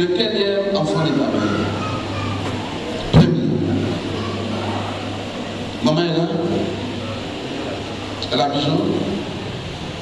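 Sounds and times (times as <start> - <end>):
man speaking into a microphone: 0.0 - 1.8, 5.8 - 7.0, 8.2 - 9.3
steady low hum: 0.0 - 10.0.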